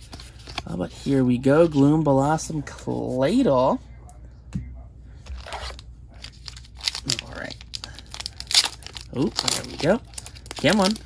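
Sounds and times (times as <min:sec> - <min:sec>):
foil pack tearing open: 0:05.5 - 0:11.0
foil wrapper crinkling: 0:05.7 - 0:11.0.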